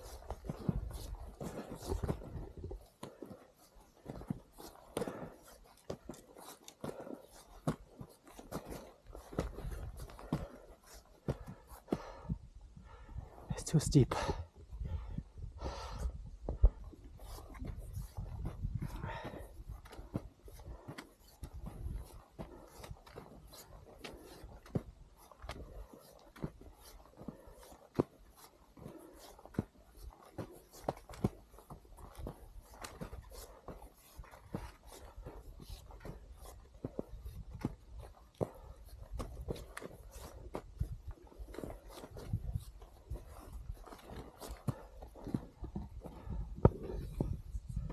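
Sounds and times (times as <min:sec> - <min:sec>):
footsteps crunching in snow: 0:00.0 - 0:12.2, 0:17.1 - 0:47.9
trekking pole clicks: 0:32.0 - 0:33.5.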